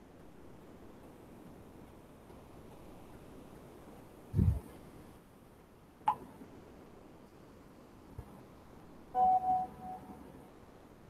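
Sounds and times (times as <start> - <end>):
electronic notification chime: 9.2 - 10.1.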